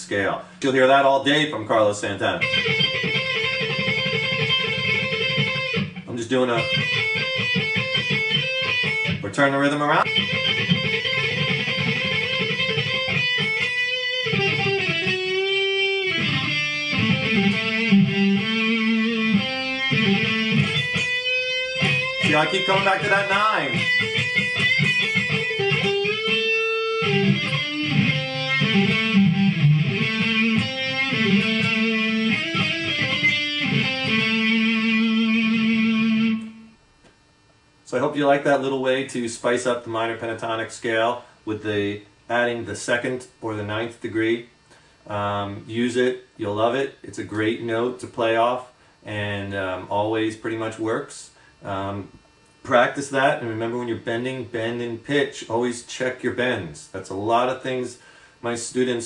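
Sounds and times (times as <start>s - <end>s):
electric guitar lick: 2.3s - 37.2s.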